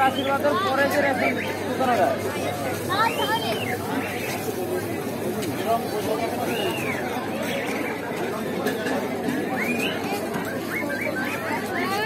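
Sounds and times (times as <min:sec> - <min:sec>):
chatter of people talking: 0:00.0 - 0:12.0.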